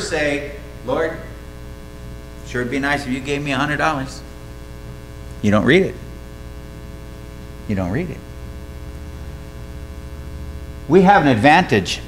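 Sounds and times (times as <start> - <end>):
electrical mains hum: 0.0 - 12.0
person speaking: 5.3 - 6.1, 7.6 - 8.3.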